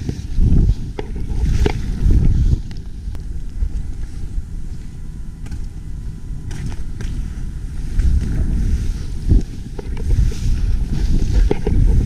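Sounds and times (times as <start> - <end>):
wind buffeting microphone: 0.0 - 12.0
skis scraping snow: 7.8 - 12.0.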